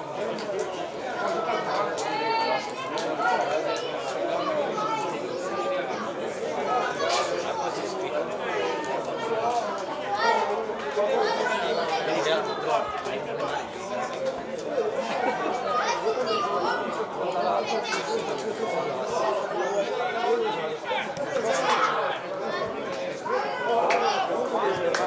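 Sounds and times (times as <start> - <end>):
chatter of voices: 0.0 - 25.0.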